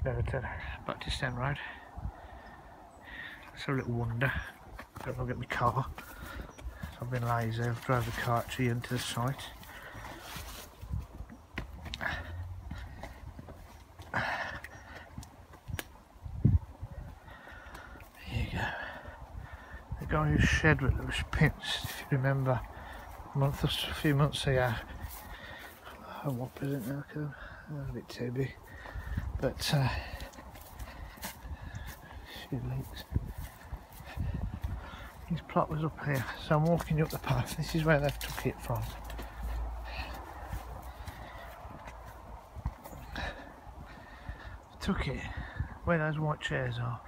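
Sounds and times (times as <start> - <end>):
footsteps on grass and earth: 3.2 - 47.0.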